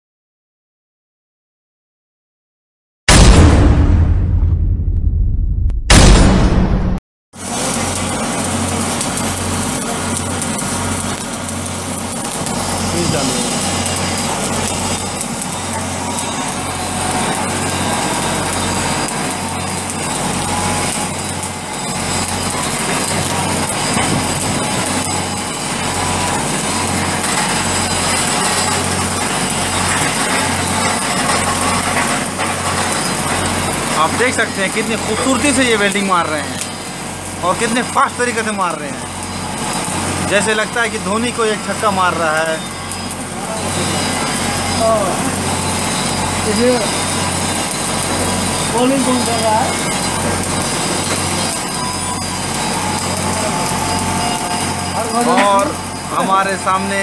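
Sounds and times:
low hum: 3.1 - 7.0
welding arc crackling: 7.4 - 57.0.

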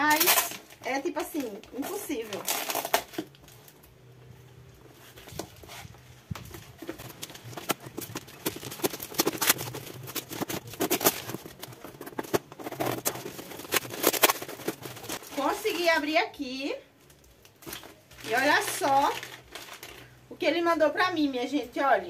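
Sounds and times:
plastic and paper packaging crackling: 0.0 - 20.3.

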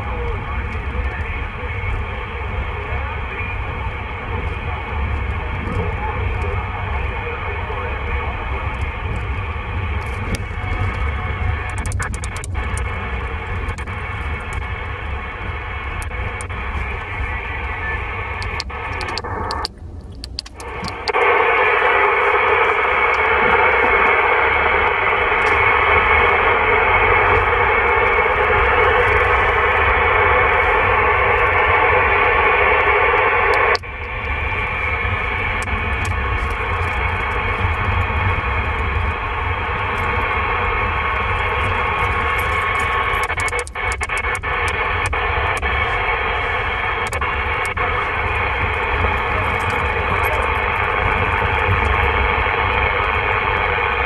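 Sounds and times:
radio crackles: 0.0 - 54.0
radio static hiss: 0.0 - 54.0.

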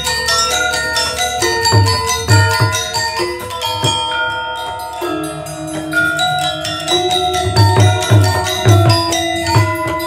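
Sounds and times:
bronze metallophones ringing: 0.0 - 10.0.

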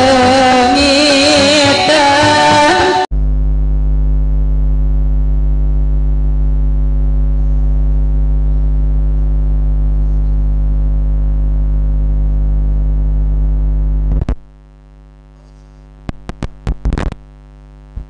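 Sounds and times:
low buzzy electrical hum: 3.1 - 18.0.

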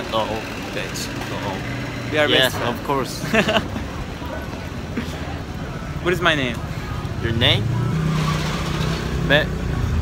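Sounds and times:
vehicle engine droning: 0.0 - 10.0.

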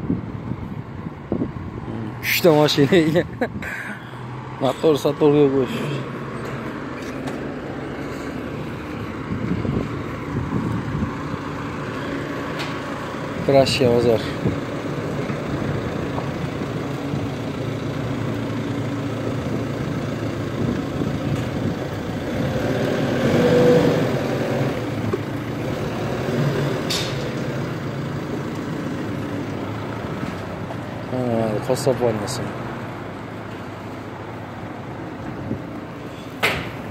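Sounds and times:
forklift engine running: 6.2 - 31.1.

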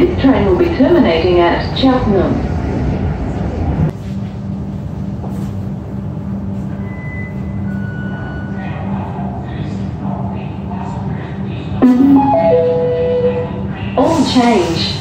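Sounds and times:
train rumble: 0.0 - 15.0
faint high tones: 11.8 - 13.9.

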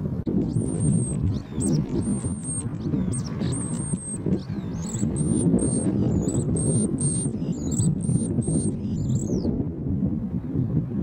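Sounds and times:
wind buffeting microphone: 0.0 - 11.0
high-pitched chirps: 0.4 - 4.2.

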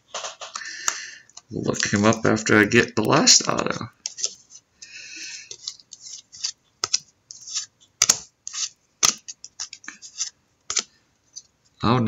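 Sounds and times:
cards rustling and scratching: 0.0 - 11.5.

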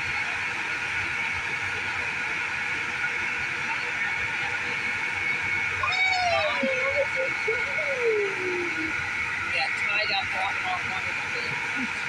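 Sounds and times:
child calling out: 5.8 - 8.9.

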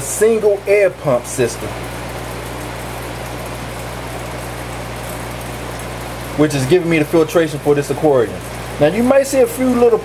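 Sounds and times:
air pump humming: 0.0 - 10.0.

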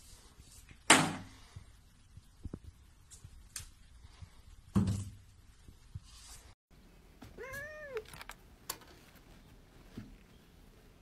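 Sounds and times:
cat meowing: 7.4 - 8.2.

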